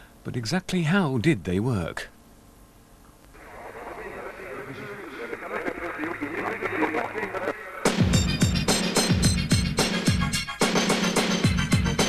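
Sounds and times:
voice over radio channel: 3.4s - 7.9s.

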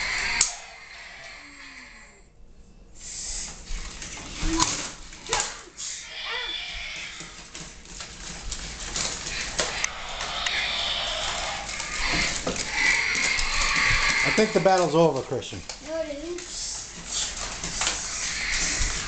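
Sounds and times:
toy electronic growls and roars: 0.0s - 2.2s, 5.8s - 7.5s, 9.3s - 14.9s, 17.8s - 19.0s
plastic toys clattering on tiles: 6.9s - 10.3s, 11.1s - 15.9s.

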